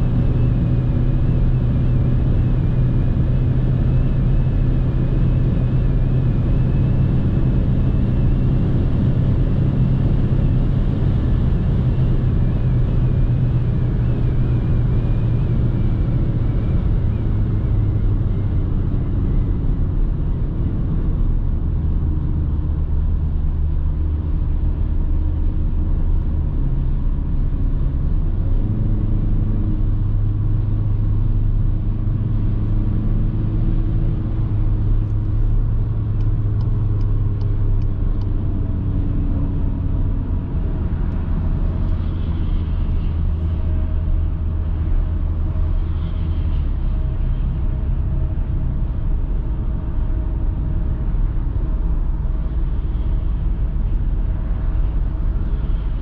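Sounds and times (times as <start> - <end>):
car engine drone: 0.0 - 56.0.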